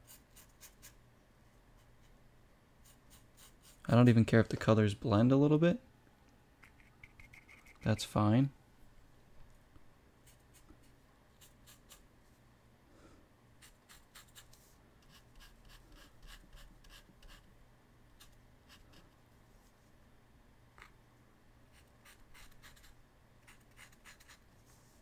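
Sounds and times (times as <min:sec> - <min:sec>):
paintbrush scratching on paper: 0:02.8 - 0:03.9, 0:06.8 - 0:08.0, 0:13.6 - 0:17.5, 0:21.7 - 0:25.0.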